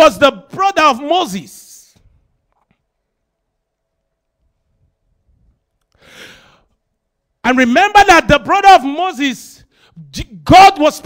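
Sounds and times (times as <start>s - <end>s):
man breathing into microphone: 5.9s - 6.8s.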